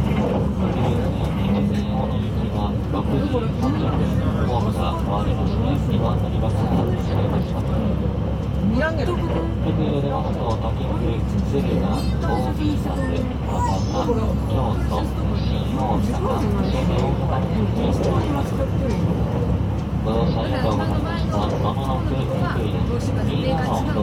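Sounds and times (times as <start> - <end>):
passengers chattering: 0.0 - 24.0.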